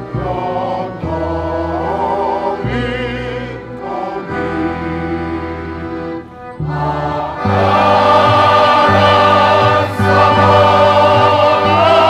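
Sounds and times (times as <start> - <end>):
accordion chords: 0.0 - 12.0
mixed choir singing: 0.0 - 12.0.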